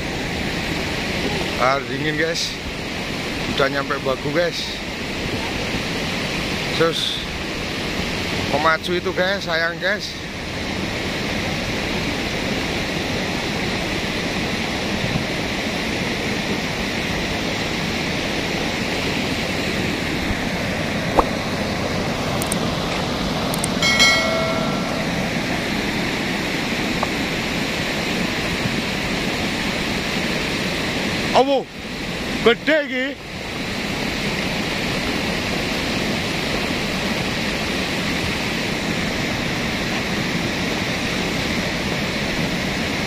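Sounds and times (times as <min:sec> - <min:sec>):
mudflow rushing down river: 0:00.0 - 0:43.0
brief pitched tone: 0:23.8 - 0:25.6.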